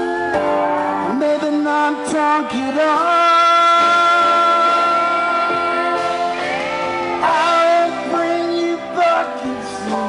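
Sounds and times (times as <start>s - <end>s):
electric guitar: 0.0s - 10.0s
live rock band playing: 0.0s - 10.0s.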